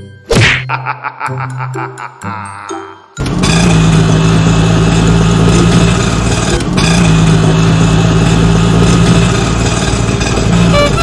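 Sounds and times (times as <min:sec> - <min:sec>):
auto rickshaw engine running: 0:03.2 - 0:11.0.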